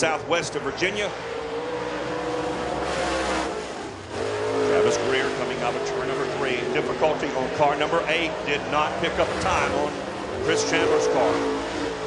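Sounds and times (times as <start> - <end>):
race car engine running hard: 0.0 - 12.0.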